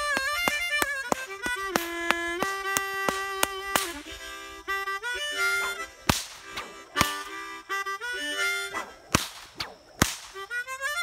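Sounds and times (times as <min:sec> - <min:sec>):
bullwhip cracks: 0:00.0 - 0:04.1, 0:05.6 - 0:07.4, 0:08.7 - 0:10.5
harmonica notes: 0:00.0 - 0:11.0.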